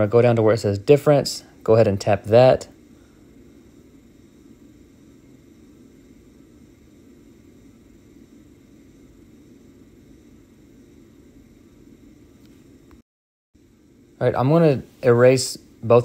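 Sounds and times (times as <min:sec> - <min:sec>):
low hum and hiss: 0:00.0 - 0:13.0, 0:13.6 - 0:16.0.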